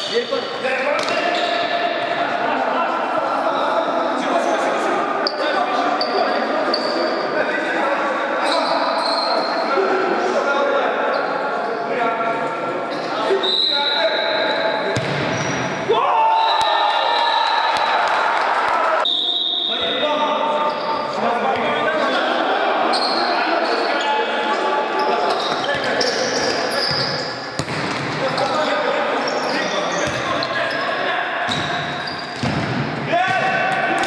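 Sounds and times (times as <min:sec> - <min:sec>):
sneakers squeaking on court: 0:14.2 - 0:15.8, 0:25.0 - 0:32.8
ball kicked and bouncing: 0:15.0 - 0:15.6, 0:27.6 - 0:28.1.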